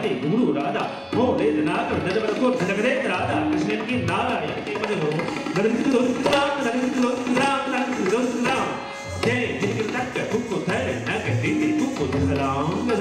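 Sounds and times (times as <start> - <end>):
tabla playing: 0.0 - 13.0.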